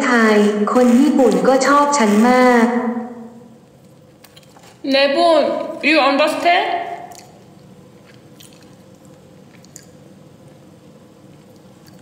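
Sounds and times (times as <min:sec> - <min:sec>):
low room noise: 0:00.0 - 0:12.0.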